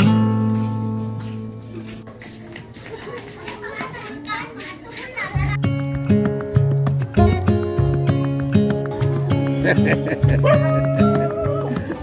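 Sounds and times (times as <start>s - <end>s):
children chattering: 1.5s - 6.0s, 7.0s - 12.0s
music with steady bass line: 5.5s - 12.0s.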